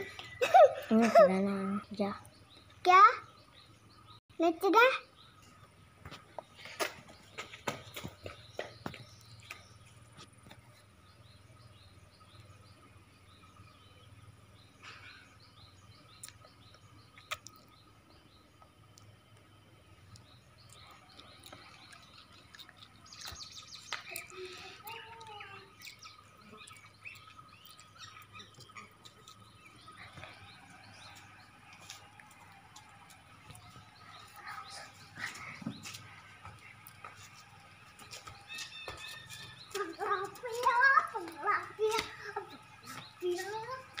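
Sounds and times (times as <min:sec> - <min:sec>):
indistinct voices outdoors: 0:00.0 - 0:44.0.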